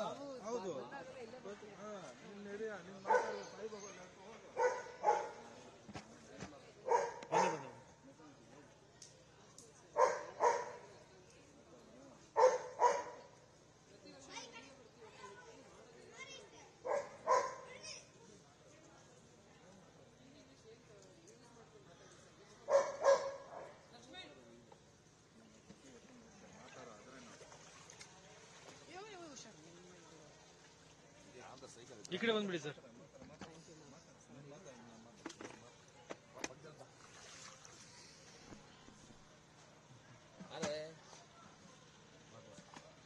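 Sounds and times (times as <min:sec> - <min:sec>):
dog barking: 0:03.1 - 0:03.5, 0:04.6 - 0:05.4, 0:06.8 - 0:07.8, 0:10.0 - 0:10.8, 0:12.4 - 0:13.2, 0:16.8 - 0:17.7, 0:22.7 - 0:23.8.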